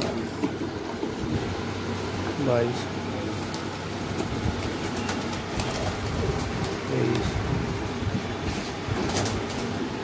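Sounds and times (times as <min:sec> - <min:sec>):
pigeons cooing: 0:00.0 - 0:10.0
wing flaps: 0:04.2 - 0:07.4, 0:08.4 - 0:09.8.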